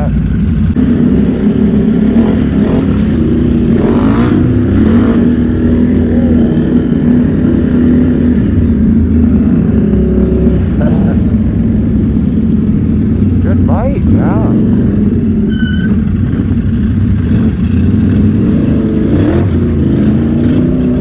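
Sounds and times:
atv engine running: 0:00.0 - 0:21.0.

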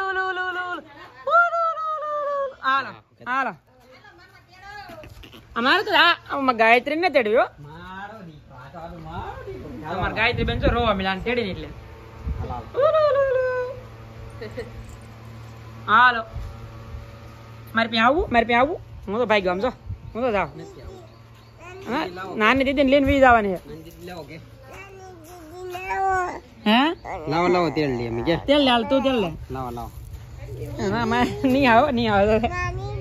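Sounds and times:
toddler whining cry: 0:24.6 - 0:29.5
adult drawn-out vocalizing: 0:24.9 - 0:29.4.

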